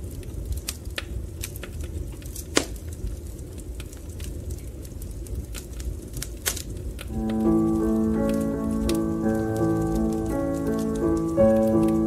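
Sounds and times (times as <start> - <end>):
fire crackling: 0.0 - 12.0
fire popping: 0.0 - 12.0
low rumble: 7.1 - 12.0
slow music of held chords: 7.1 - 12.0.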